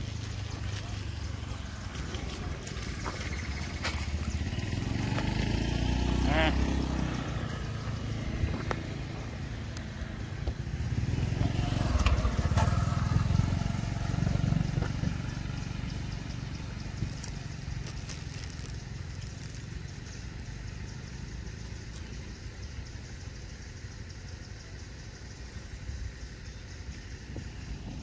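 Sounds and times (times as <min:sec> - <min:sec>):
passing vehicle engine rumble: 0:00.0 - 0:28.0.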